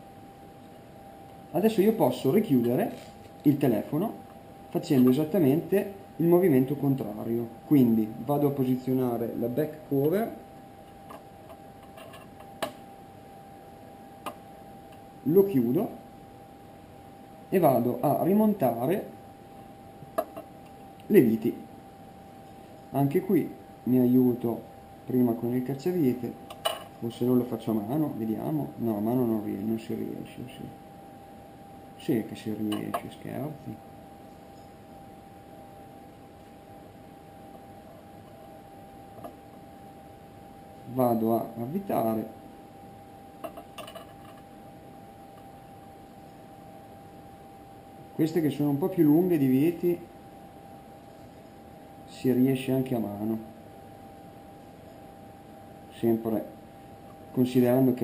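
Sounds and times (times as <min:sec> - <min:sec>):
faint steady hum: 0:00.0 - 0:58.0
thin steady whine: 0:00.0 - 0:58.0.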